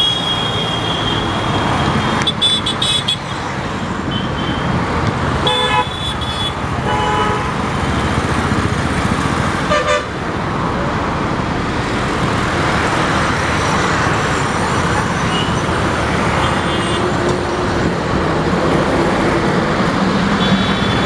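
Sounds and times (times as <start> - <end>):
road traffic noise: 0.0 - 21.0
vehicle horn toots: 5.4 - 7.5, 9.7 - 10.1.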